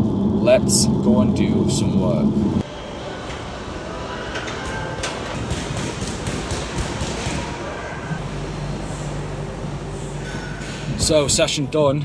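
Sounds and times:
low hum: 0:00.0 - 0:03.8, 0:07.8 - 0:12.0
gym room din: 0:04.4 - 0:11.3.

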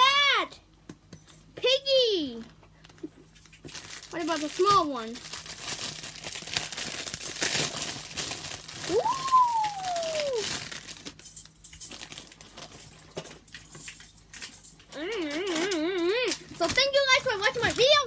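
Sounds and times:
plastic bag crinkling: 0:02.8 - 0:14.0, 0:14.7 - 0:18.0.

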